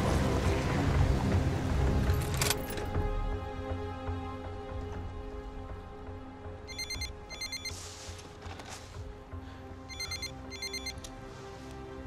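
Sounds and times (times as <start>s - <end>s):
low steady music score: 0.0s - 12.0s
telephone electronic trilling ring: 6.7s - 7.7s, 9.9s - 11.0s.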